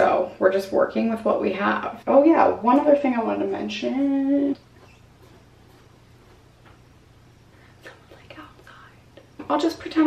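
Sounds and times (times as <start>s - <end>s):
low room tone hum: 0.0s - 10.0s
woman whispering: 7.8s - 9.4s.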